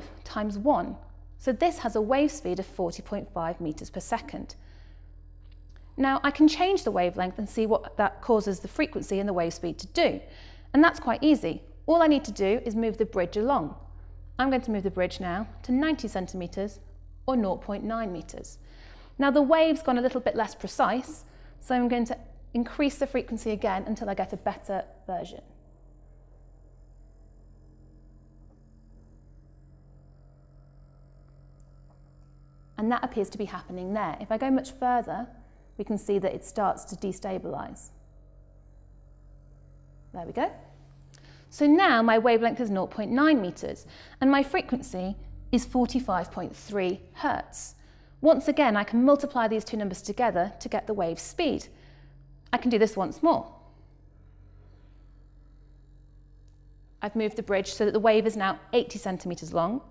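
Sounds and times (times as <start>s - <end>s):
low hum of vibrating string: 0.0s - 59.9s.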